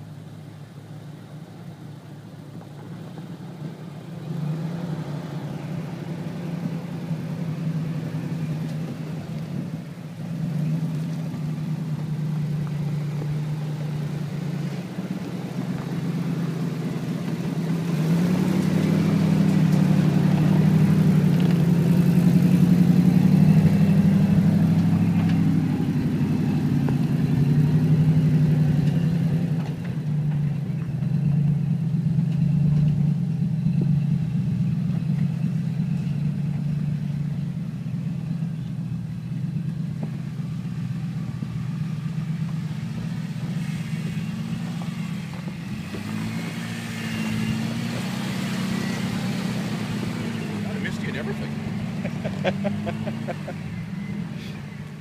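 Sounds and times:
off-road vehicle engines at low revs: 0:00.0 - 0:55.0.

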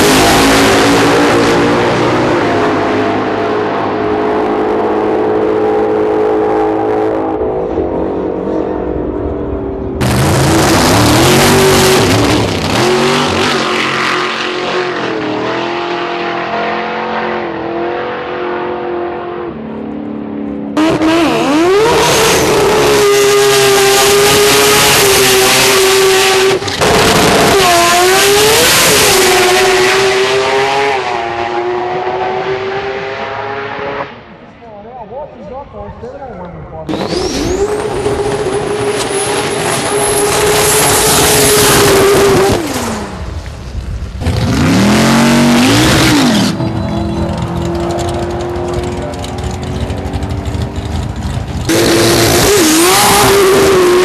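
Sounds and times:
drag racing cars accelerating: 0:00.0 - 0:34.4, 0:36.8 - 0:54.0.

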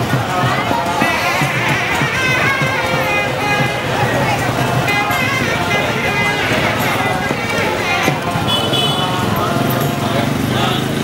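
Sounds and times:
voices singing held notes: 0:00.0 - 0:11.0.

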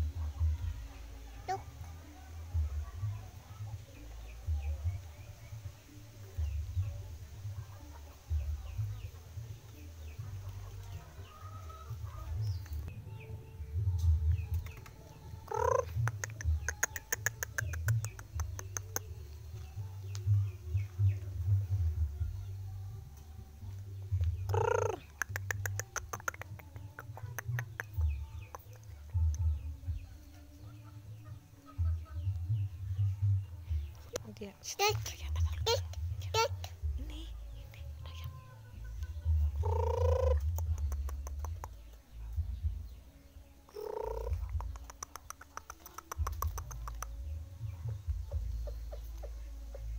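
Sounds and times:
low microphone rumble: 0:41.8 - 0:44.7.

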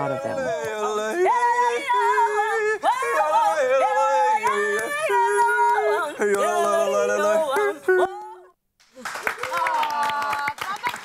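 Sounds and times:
person singing: 0:00.0 - 0:08.5.

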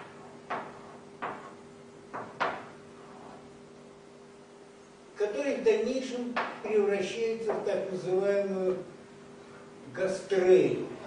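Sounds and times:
chalk knocking on blackboard: 0:00.0 - 0:03.4, 0:06.4 - 0:06.6, 0:07.5 - 0:07.7.

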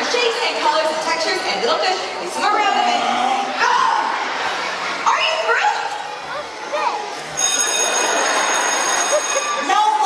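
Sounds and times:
electric bell ringing: 0:07.4 - 0:09.9.

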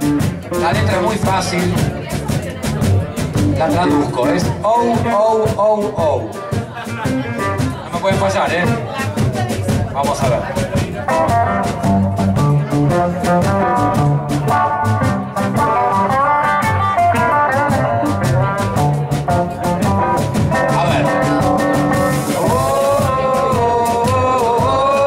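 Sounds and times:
drum kit steady beat: 0:00.0 - 0:25.0
electric guitars: 0:00.0 - 0:25.0
upright double bass: 0:00.0 - 0:25.0.

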